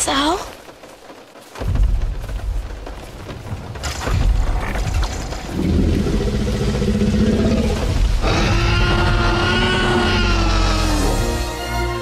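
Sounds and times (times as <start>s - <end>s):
low rattling growl: 4.5s - 11.2s
long pitched dinosaur roar: 5.6s - 11.2s.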